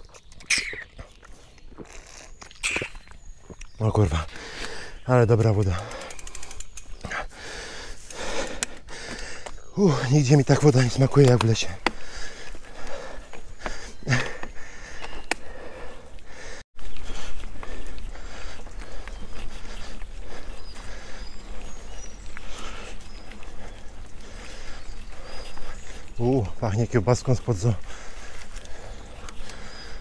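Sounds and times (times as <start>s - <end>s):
bike tyres on dirt trail: 0.0s - 30.0s
bike rattling and knocking: 5.4s - 7.2s
faint bird chirps: 19.0s - 26.7s.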